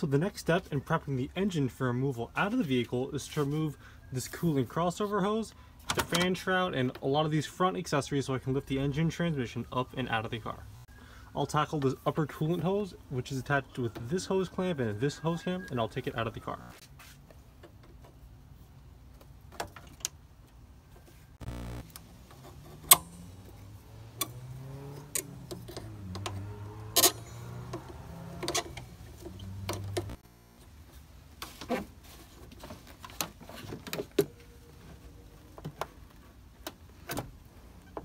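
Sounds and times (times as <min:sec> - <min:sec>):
tools clicking and knocking on metal: 0:25.0 - 0:30.2.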